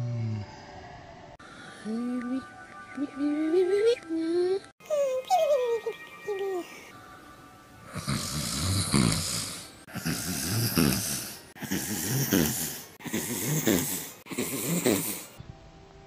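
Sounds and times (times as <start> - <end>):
person snoring: 0.0 - 0.8, 7.8 - 15.4.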